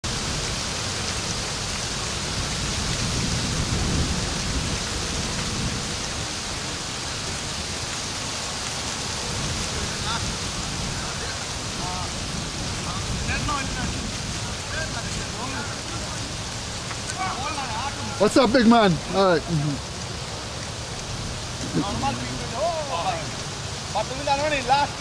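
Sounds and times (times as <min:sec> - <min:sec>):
wind buffeting microphone: 0:00.0 - 0:19.2.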